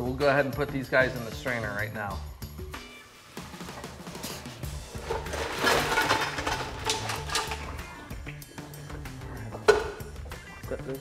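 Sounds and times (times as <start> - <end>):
background music: 0.0 - 11.0
water splashing into colander: 5.0 - 7.7
shells clattering: 5.1 - 7.8.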